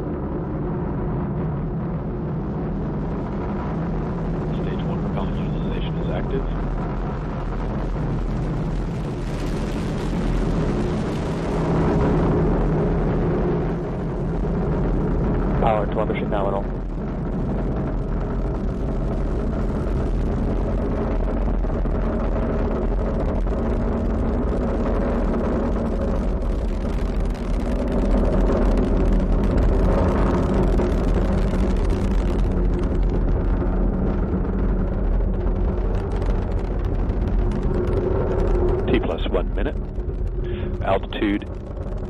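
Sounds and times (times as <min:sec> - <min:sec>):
rocket engines rumbling with crackle: 0:00.0 - 0:42.0.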